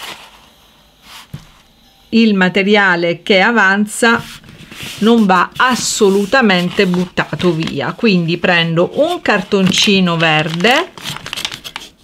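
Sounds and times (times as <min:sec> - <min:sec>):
paper rustle: 0:00.0 - 0:00.4, 0:04.2 - 0:12.0.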